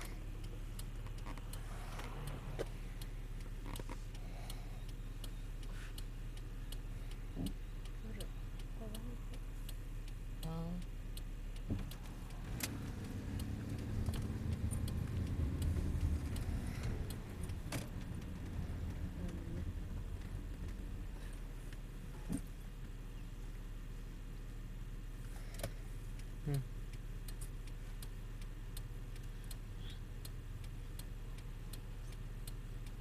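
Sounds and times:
car engine running: 0.0s - 33.0s
road noise: 0.0s - 33.0s.

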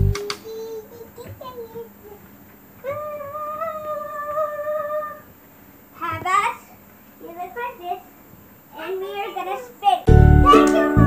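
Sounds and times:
child singing long note: 2.8s - 5.3s, 10.5s - 11.0s.

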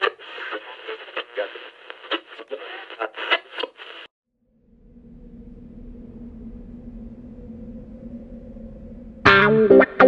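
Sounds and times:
crackles and clicks: 0.0s - 4.1s.

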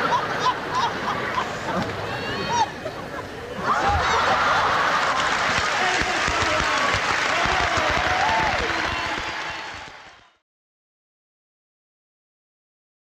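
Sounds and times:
audience applause: 3.8s - 10.4s.

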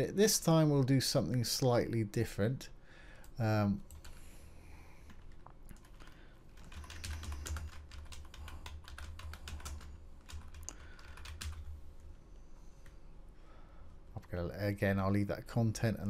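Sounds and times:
typing on computer keyboard: 3.9s - 4.2s, 5.1s - 11.7s.

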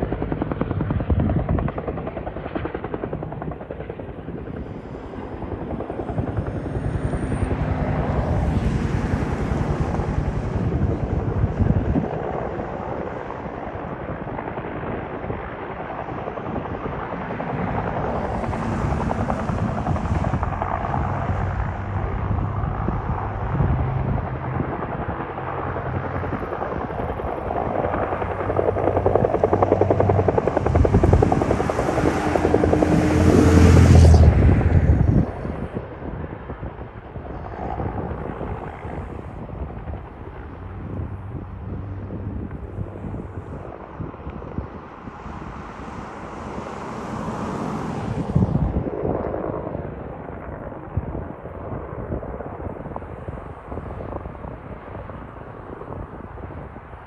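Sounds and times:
helicopter rotor and engine drone: 0.0s - 57.0s.

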